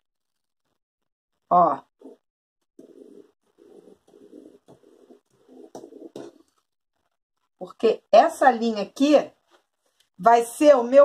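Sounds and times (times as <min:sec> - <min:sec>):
pen scratching on fabric: 0:02.0 - 0:06.6.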